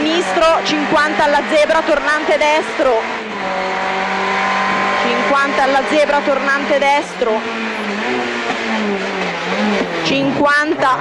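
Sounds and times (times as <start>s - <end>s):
car engine running hard: 0.0s - 11.0s
road and cabin noise: 0.0s - 11.0s.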